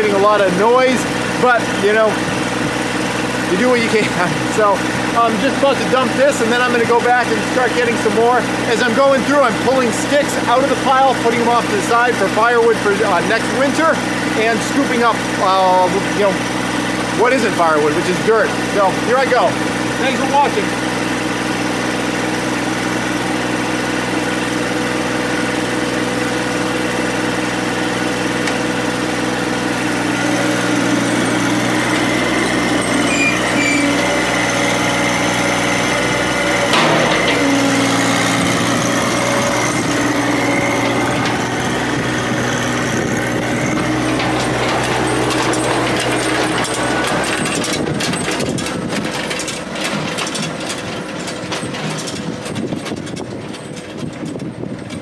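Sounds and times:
tractor engine running: 0.0s - 55.0s
tractor rattling and clattering: 0.0s - 55.0s.

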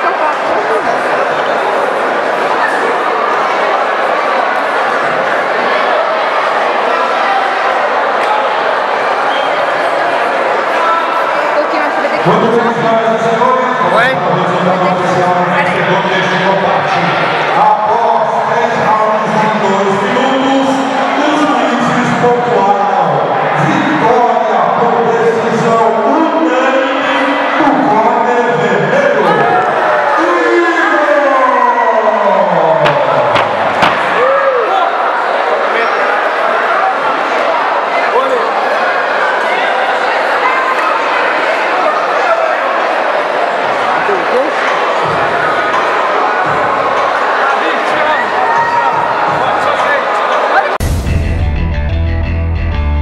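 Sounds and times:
crowd cheering and talking: 0.0s - 53.0s
music: 50.8s - 53.0s.

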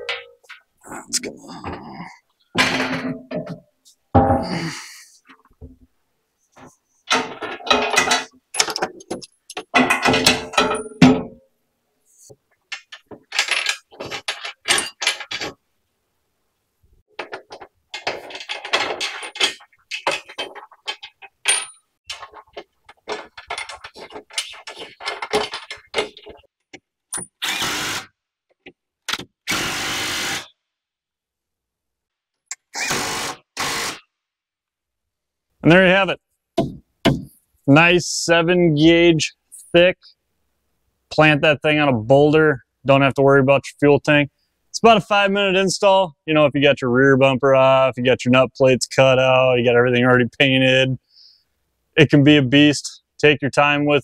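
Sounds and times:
knocks and clicks of bolts and metal: 6.6s - 11.4s, 12.7s - 15.6s, 17.1s - 27.3s, 28.5s - 29.3s.

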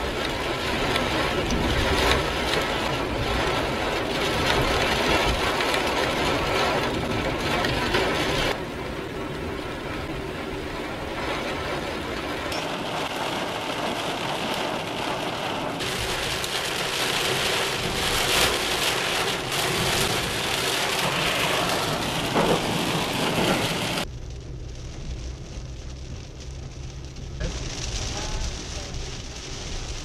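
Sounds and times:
heavy rain on car roof: 0.0s - 30.0s.

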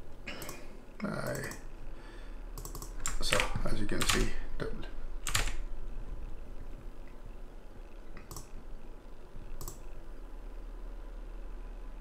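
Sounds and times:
computer mouse clicking: 0.3s - 1.7s, 2.5s - 4.3s, 5.2s - 5.6s, 8.1s - 8.6s, 9.5s - 10.0s.

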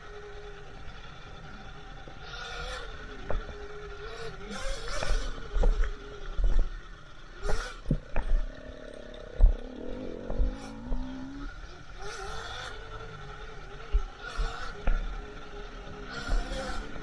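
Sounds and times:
electric motor whine: 0.0s - 17.0s
bike knocks and rattles: 3.2s - 3.7s, 4.5s - 11.5s, 13.8s - 15.4s.

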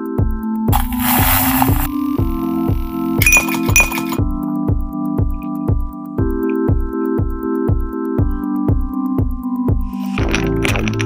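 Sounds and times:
electronic music with steady beat: 0.1s - 10.5s
short hiss: 0.7s - 1.9s
ice cubes clinking in glass: 3.2s - 4.2s.

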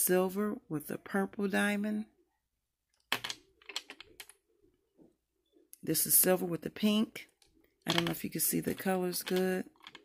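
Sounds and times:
pens clicking together: 7.9s - 8.2s.

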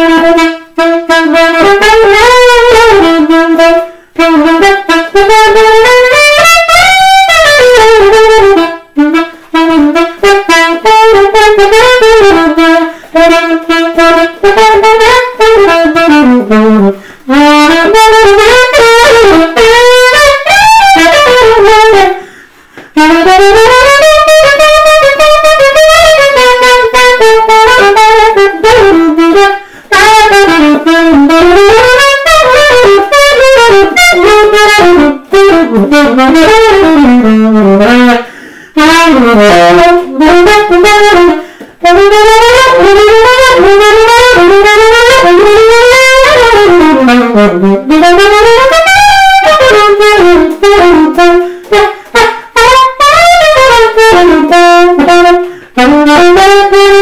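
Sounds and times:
saxophone playing jazz: 0.0s - 57.0s.

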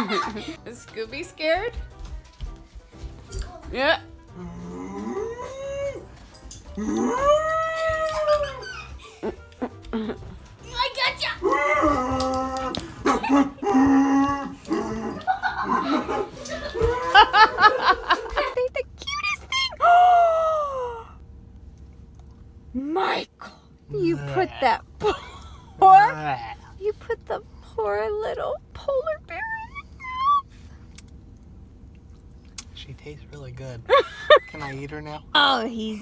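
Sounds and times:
dog howling: 4.4s - 6.1s, 6.8s - 8.9s, 11.4s - 15.2s
high-pitched descending cry: 6.8s - 8.9s, 29.3s - 30.5s
faint steady hum: 11.4s - 36.0s.

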